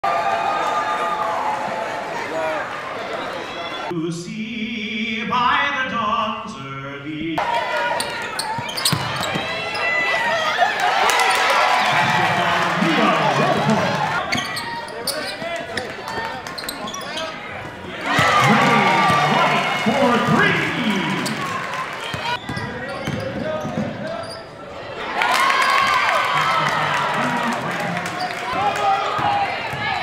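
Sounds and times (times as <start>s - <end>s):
voices of players and spectators: 0.0s - 4.3s, 5.3s - 30.0s
basketball bouncing on court: 8.0s - 9.8s, 21.2s - 24.1s, 29.0s - 30.0s.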